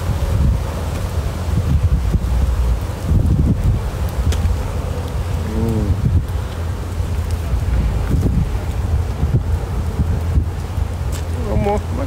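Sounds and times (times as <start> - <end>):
wind buffeting microphone: 0.0 - 12.0
man humming: 5.4 - 6.1.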